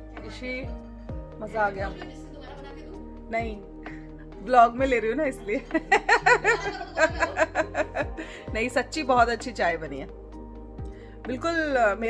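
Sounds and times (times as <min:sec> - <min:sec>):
woman laughing: 0:01.7 - 0:03.1, 0:05.4 - 0:08.4.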